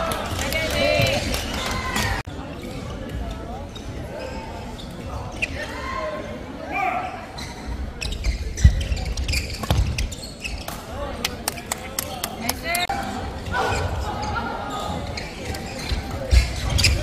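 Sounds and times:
voices in background: 0.0s - 17.0s
shoe squeaks on court floor: 3.7s - 5.7s, 7.2s - 11.7s, 13.7s - 17.0s.

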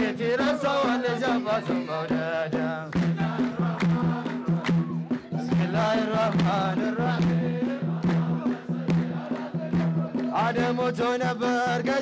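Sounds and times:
hand drums beating: 0.0s - 12.0s
men singing a chant: 0.0s - 12.0s
handclapping: 2.9s - 7.4s, 8.0s - 10.8s.

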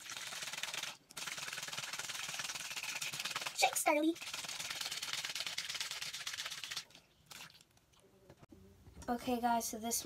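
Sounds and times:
bottle of water sloshing and rattling: 4.2s - 7.8s.

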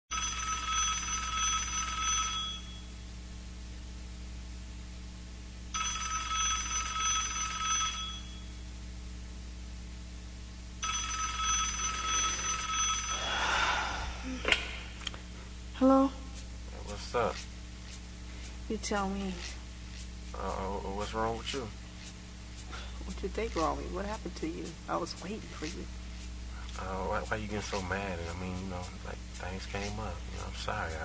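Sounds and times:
telephone ringing: 0.1s - 2.9s, 5.7s - 8.5s, 10.8s - 13.3s.

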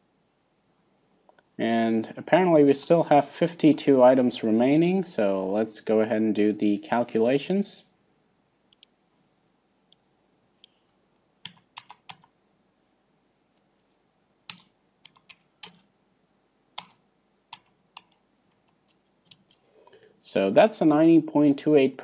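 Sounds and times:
computer keyboard keystrokes: 11.4s - 12.3s, 14.5s - 15.9s, 16.8s - 19.7s.

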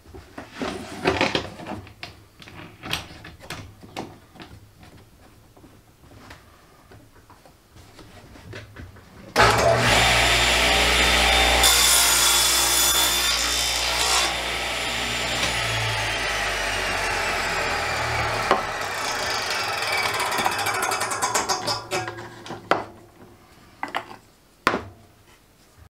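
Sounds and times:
table saw cutting wood: 9.4s - 21.9s
wooden knocks: 18.4s - 23.0s.

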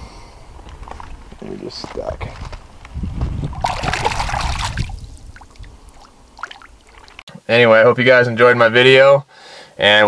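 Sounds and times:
fish splashing in water: 3.5s - 7.2s.

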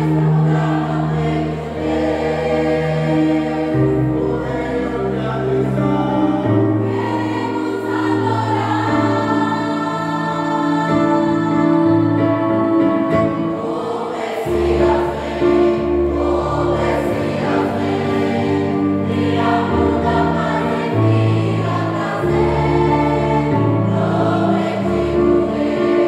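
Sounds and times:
group singing a worship song: 0.0s - 26.0s
held chords and bass notes: 0.0s - 26.0s.

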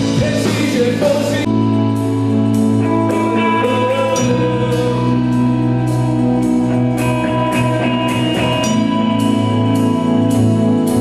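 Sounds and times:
drums: 0.0s - 11.0s
electric bass: 0.0s - 11.0s.

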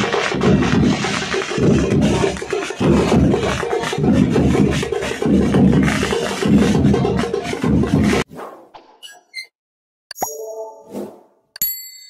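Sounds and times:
music with heavy bass beat: 0.0s - 8.2s.

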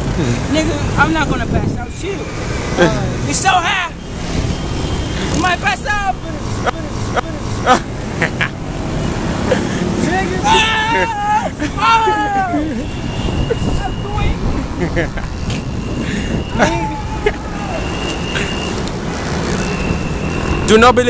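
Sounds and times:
highway traffic noise: 0.0s - 21.0s
voices calling out: 0.0s - 21.0s.

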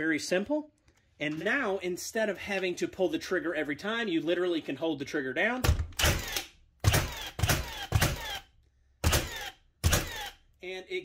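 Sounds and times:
nail gun shots: 5.6s - 10.4s.

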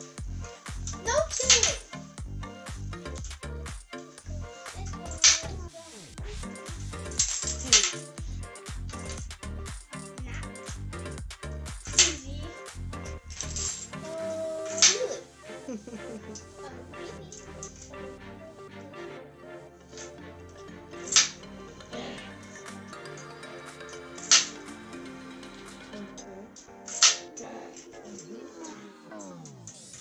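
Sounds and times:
background music: 0.0s - 30.0s.

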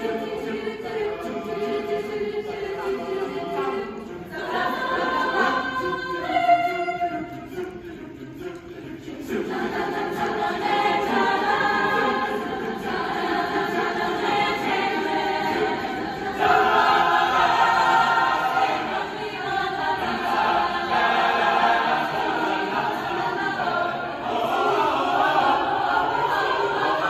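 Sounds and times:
mixed choir singing: 0.0s - 27.0s.

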